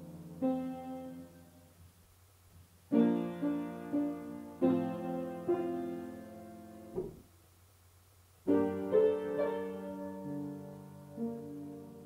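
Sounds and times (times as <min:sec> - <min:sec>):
piano chords: 0:00.0 - 0:01.7, 0:02.9 - 0:07.3, 0:08.4 - 0:12.0.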